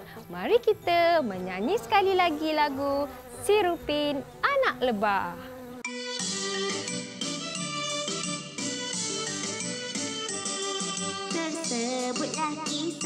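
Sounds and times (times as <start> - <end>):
person singing: 11.1 - 13.0.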